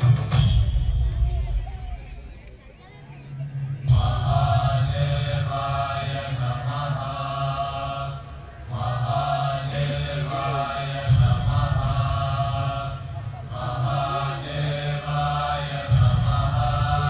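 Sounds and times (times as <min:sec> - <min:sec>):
voices chanting: 0:00.0 - 0:17.0.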